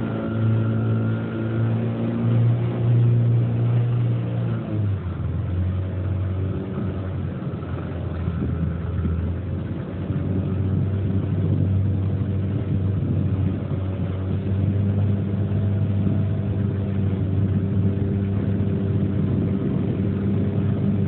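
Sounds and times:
outboard motor running: 0.0 - 21.0.

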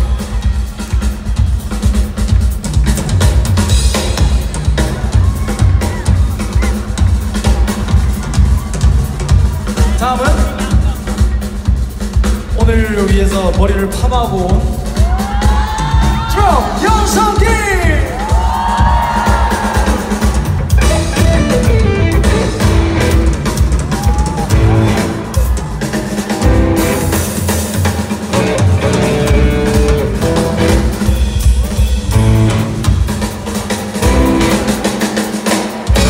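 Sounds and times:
bass drum and rimshots: 0.0 - 35.2
live band playing: 0.0 - 36.0
fans whooping: 4.7 - 10.0, 14.8 - 27.2.

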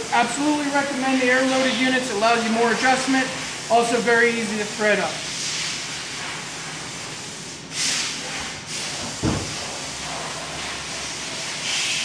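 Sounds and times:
compressed air hiss: 0.0 - 12.0
steady background hiss: 0.0 - 12.0
dull thump: 9.1 - 9.7.

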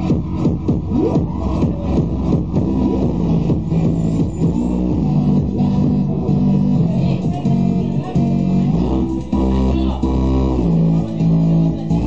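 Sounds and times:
electronic dance music: 0.0 - 12.0
loud low bass line: 0.0 - 12.0.

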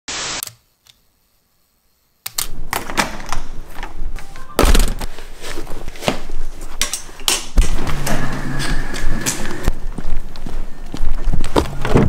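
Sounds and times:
sneaker footsteps on tiled floor: 5.0 - 12.0.

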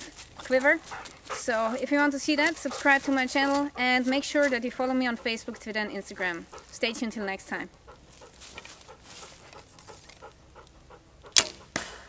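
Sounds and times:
bow snapping as arrow shot: 11.3 - 12.0.

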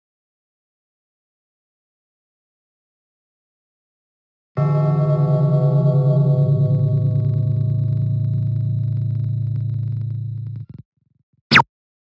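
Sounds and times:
low gong-like ringing: 4.6 - 10.4.

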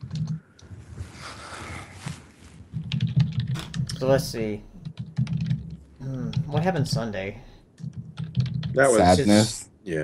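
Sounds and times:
computer keyboard typing: 0.0 - 0.4, 2.7 - 8.8.

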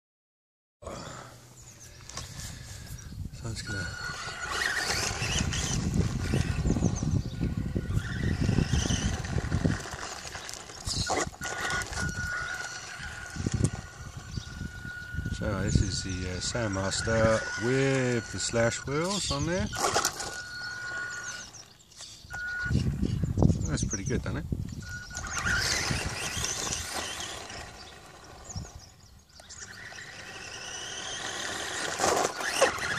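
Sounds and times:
birds chirping faintly: 0.8 - 32.9
tyres on gravel: 1.8 - 23.2, 24.8 - 32.9
high electric motor whine: 1.8 - 32.9
faint high chirps: 10.4 - 23.7.

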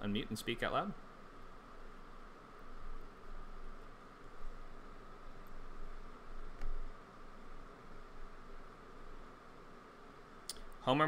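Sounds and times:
faint high hum: 0.0 - 11.0
low microphone hiss: 0.0 - 11.0.

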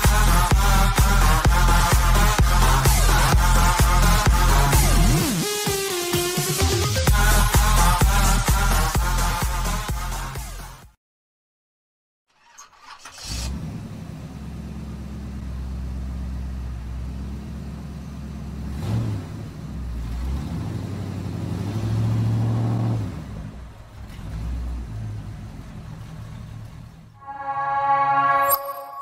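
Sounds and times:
car engine revving: 13.4 - 27.2.

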